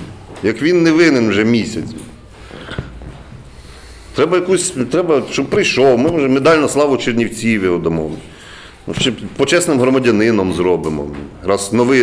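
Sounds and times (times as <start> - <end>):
faint breath: 2.3 - 4.2, 8.2 - 8.9.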